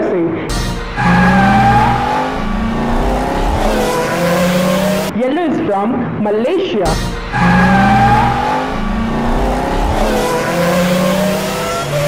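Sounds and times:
race car engine revving: 0:00.5 - 0:05.1, 0:06.9 - 0:12.0.

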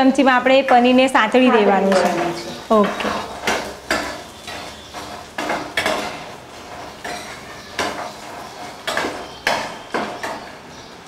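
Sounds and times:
spoon scraping a frying pan: 0:00.6 - 0:10.7.

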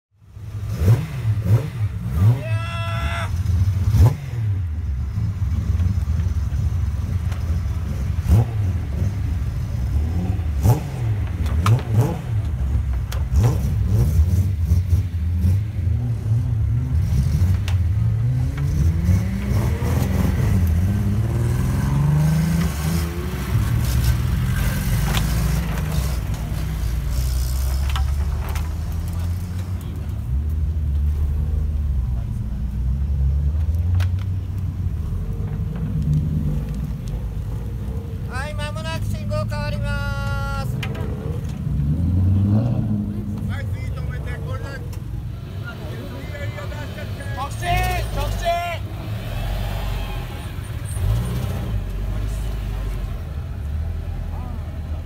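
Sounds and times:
car exhausts rumbling: 0:00.3 - 0:55.0
engine revving: 0:00.4 - 0:02.6, 0:03.3 - 0:06.0, 0:07.8 - 0:29.9, 0:38.7 - 0:55.0.

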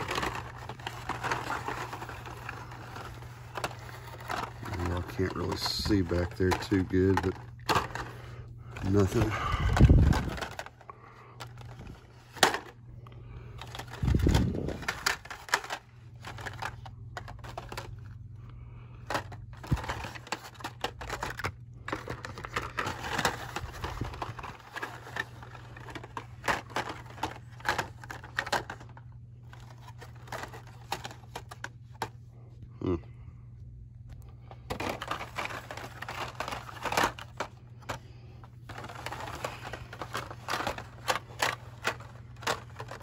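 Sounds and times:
plastic packs clicking on hooks: 0:00.0 - 0:12.8, 0:13.5 - 0:18.2, 0:19.0 - 0:32.1, 0:34.5 - 0:43.0
plastic crinkling: 0:00.0 - 0:18.1, 0:19.0 - 0:32.0, 0:34.5 - 0:43.0
steady low hum: 0:00.0 - 0:43.0.

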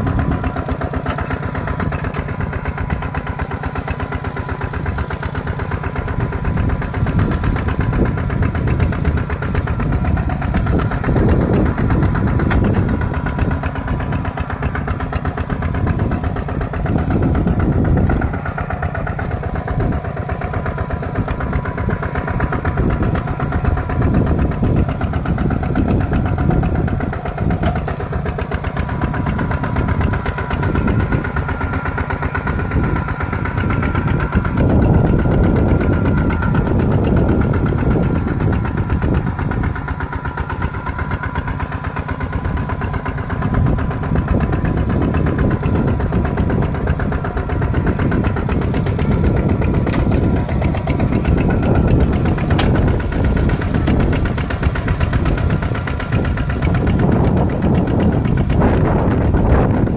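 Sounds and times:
diesel engine running under load: 0:00.0 - 0:59.9.

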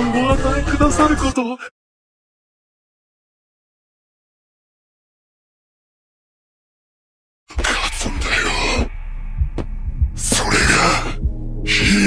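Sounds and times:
deep slow bass thumps: 0:07.6 - 0:12.0
steady low hum: 0:07.6 - 0:12.0.

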